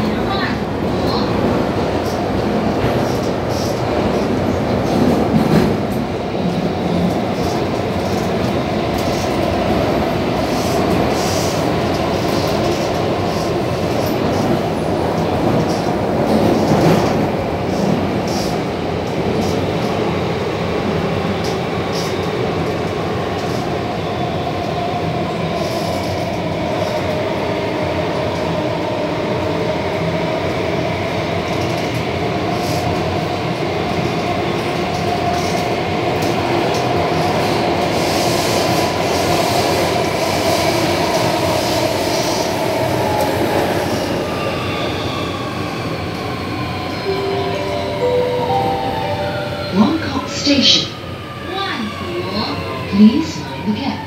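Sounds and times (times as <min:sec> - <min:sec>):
wheels rumbling on rail: 0:00.0 - 0:24.0.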